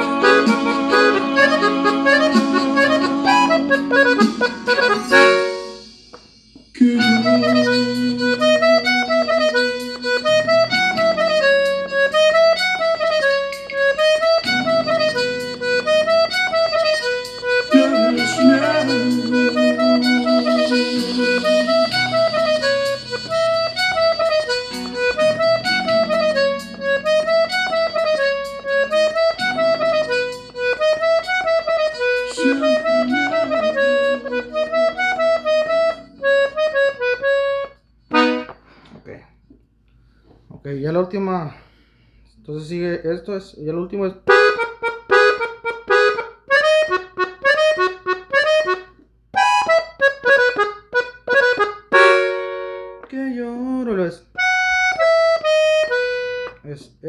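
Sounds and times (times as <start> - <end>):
accordion bass notes: 0.0 - 38.8, 42.5 - 57.0
accordion treble melody: 0.0 - 38.8, 44.2 - 56.9.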